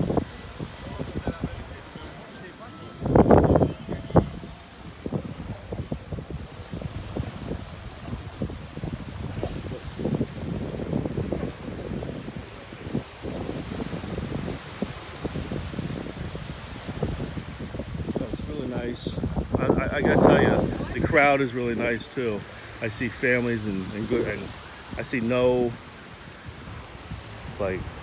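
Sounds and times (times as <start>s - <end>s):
small waves breaking: 0.0s - 28.0s
wind buffeting microphone: 0.0s - 28.0s.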